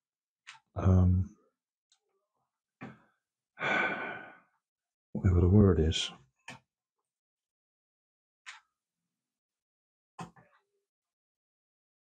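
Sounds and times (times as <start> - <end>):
man sighing: 3.6 - 4.4.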